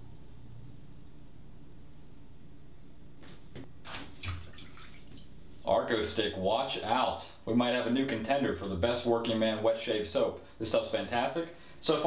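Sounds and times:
man talking: 5.6s - 12.0s.

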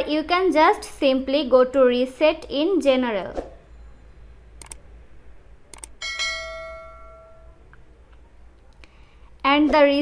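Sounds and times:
bell chime: 6.0s - 7.6s.

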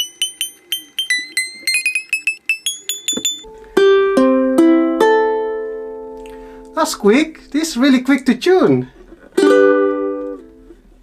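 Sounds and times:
open ukulele strings ringing: 0.0s - 6.8s
ukulele string plucked: 2.7s - 6.7s, 9.3s - 10.7s.

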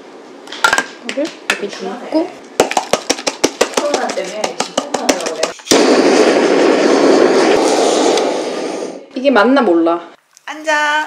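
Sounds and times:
blowtorch flame rushing: 5.6s - 9.2s.

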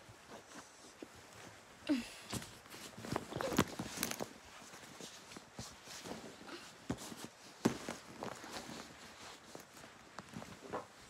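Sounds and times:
pillow rustling against microphone: 0.0s - 11.0s.

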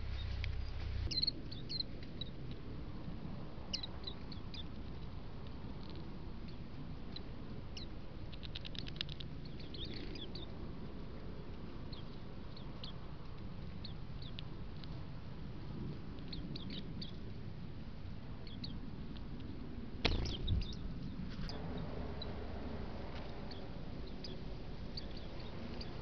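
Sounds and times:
small birds chirping: 0.0s - 2.5s, 3.6s - 17.4s, 18.4s - 26.0s
low rumble: 0.0s - 8.4s, 9.2s - 26.0s
steady outdoor hiss: 0.0s - 26.0s
rapid ticks: 4.6s - 10.4s.

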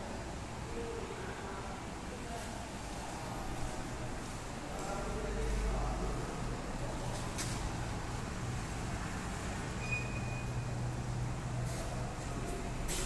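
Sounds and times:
faint high beep: 9.8s - 10.7s.

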